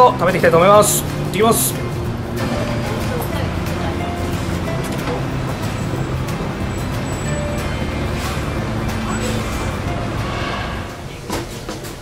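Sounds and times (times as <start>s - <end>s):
music: 0.0s - 12.0s
traffic rumble: 0.0s - 12.0s.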